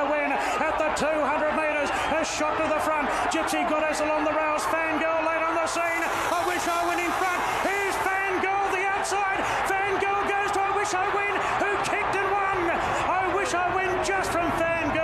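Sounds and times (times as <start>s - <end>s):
fast race commentary: 0.0s - 15.0s.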